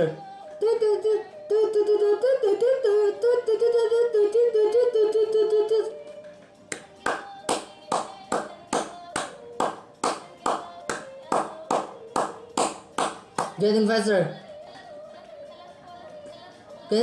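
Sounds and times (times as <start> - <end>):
hands clapping a beat: 6.1 - 13.7.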